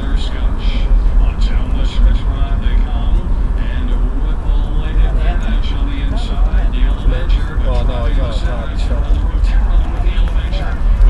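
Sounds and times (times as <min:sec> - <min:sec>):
car engine and road noise: 0:00.0 - 0:11.0
indistinct voices: 0:00.0 - 0:11.0.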